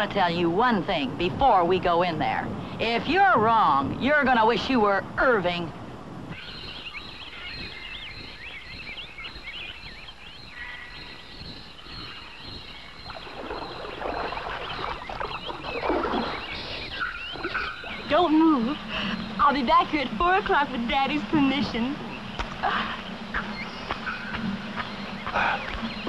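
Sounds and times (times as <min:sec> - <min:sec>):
birds chirping and squawking: 0:06.3 - 0:26.0.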